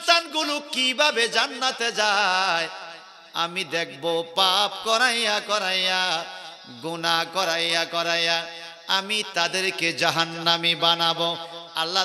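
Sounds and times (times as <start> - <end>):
man preaching in sing-song chant: 0.0 - 12.0.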